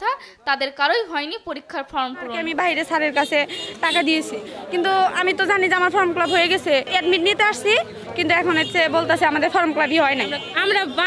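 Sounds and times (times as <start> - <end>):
people chattering: 0.0 - 11.0
woman speaking into a microphone: 0.0 - 11.0.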